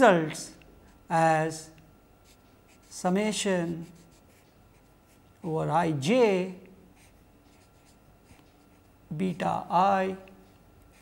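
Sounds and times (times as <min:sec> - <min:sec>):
marker writing on paper: 0:02.2 - 0:03.0, 0:03.6 - 0:05.4, 0:07.0 - 0:08.9, 0:10.4 - 0:11.0.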